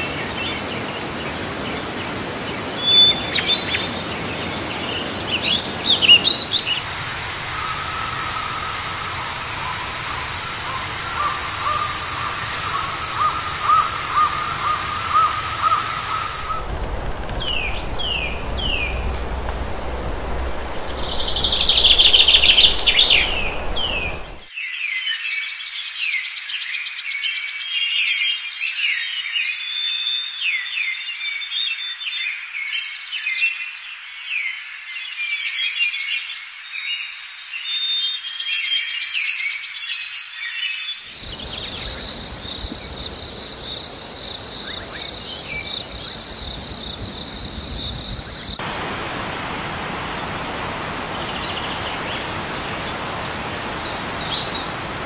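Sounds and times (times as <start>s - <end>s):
insects: 0.0s - 24.5s, 30.9s - 55.0s
birds chirping and calling: 0.1s - 24.5s, 41.1s - 55.0s
high insect drone: 3.9s - 24.5s
low rumble: 16.4s - 24.5s.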